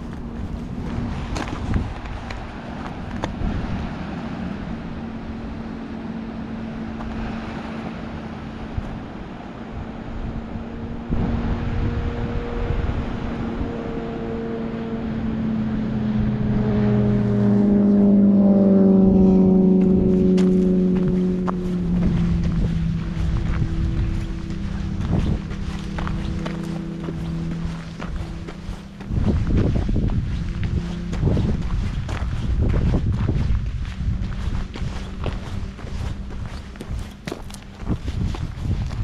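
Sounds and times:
background rush: 0.0 - 39.0
car approaching: 0.0 - 39.0.

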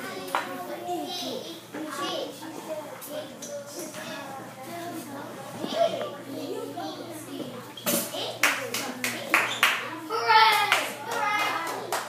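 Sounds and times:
children's voices: 0.0 - 12.0
sharp hand claps: 8.4 - 9.9, 10.5 - 12.0.

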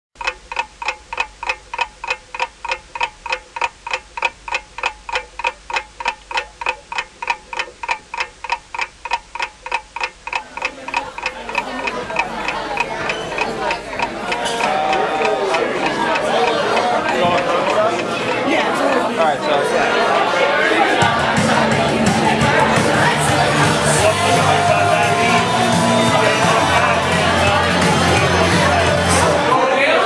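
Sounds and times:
rapid clock-like ticking: 0.2 - 29.4
crowd chatter: 10.0 - 30.0.

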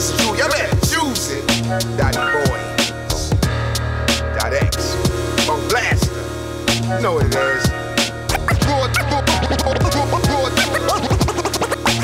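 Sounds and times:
bass line: 0.0 - 12.0
hip-hop drums: 0.0 - 12.0
turntable scratching: 8.3 - 12.0.

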